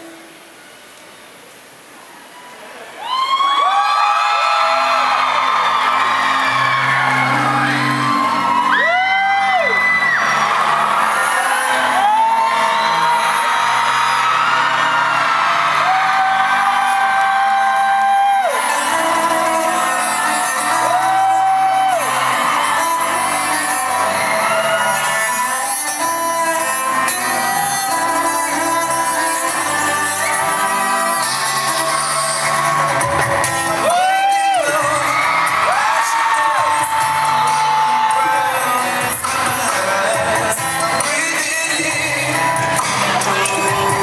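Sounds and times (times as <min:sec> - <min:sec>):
crowd whooping and cheering: 0:02.2 - 0:44.0.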